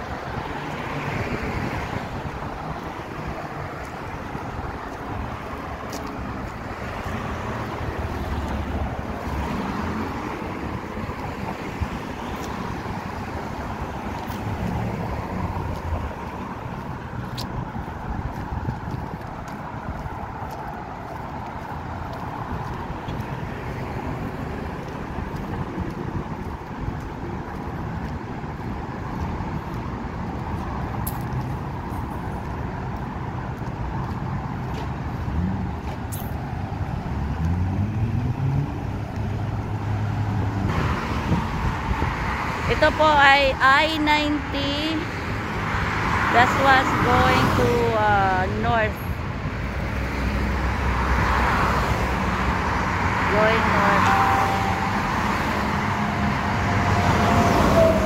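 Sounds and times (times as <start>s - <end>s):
cars passing: 0.0s - 58.0s
vehicle engine speeding up: 37.0s - 42.8s.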